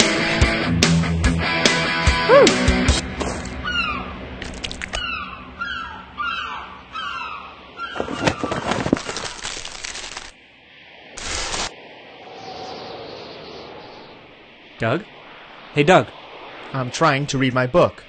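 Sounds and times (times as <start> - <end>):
rock music: 0.0 - 3.1
plastic snack bag crinkling: 8.8 - 10.4.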